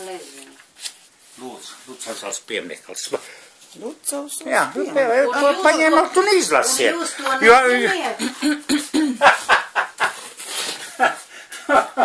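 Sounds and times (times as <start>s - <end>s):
book pages turning and rustling: 0.0s - 2.3s.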